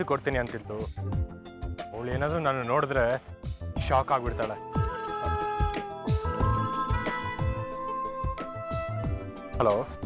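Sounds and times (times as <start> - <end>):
background music with drum beat: 0.0 - 10.0
mobile phone ringtone melody: 4.7 - 9.5.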